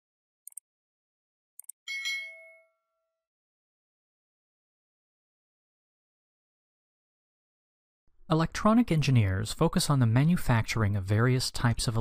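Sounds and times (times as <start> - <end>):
notification bell ding: 1.9 - 3.1.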